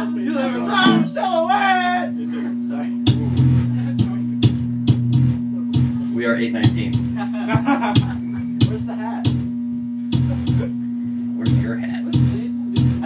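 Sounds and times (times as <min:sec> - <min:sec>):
voices: 0:00.0 - 0:04.4
steady hum: 0:00.0 - 0:13.0
electric bass notes: 0:00.7 - 0:01.2, 0:02.9 - 0:13.0
sharp drum hits: 0:03.1 - 0:10.8, 0:11.4 - 0:13.0.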